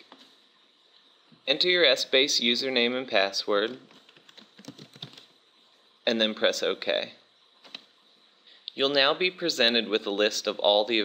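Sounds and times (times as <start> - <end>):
computer keyboard typing: 3.7 - 5.3.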